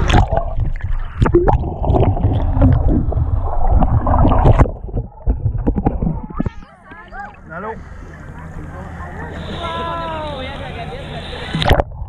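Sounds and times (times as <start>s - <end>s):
water washing around camera: 0.0s - 7.4s, 9.2s - 12.0s
low steady hum: 0.0s - 12.0s
distant voices: 4.8s - 11.7s.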